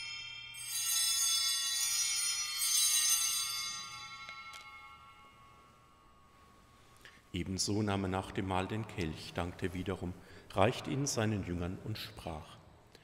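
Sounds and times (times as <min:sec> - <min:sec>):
altar bells ringing: 0:00.0 - 0:08.8.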